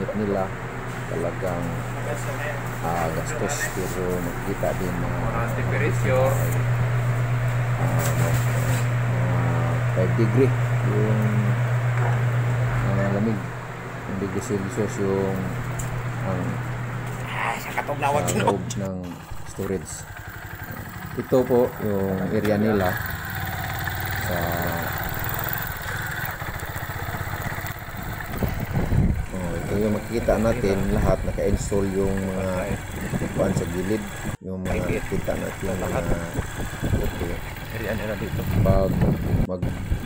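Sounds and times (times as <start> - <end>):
small motorcycle engine idling: 0.0 - 17.1, 17.9 - 40.0
refrigeration equipment humming: 0.0 - 40.0.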